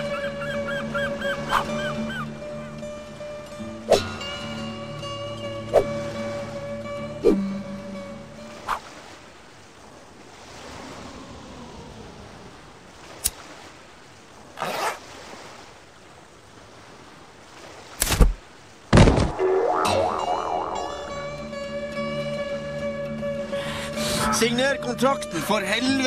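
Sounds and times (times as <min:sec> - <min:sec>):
loud sharp thumps: 0:18.0 - 0:20.4
wavering wobbling tone: 0:19.1 - 0:22.1.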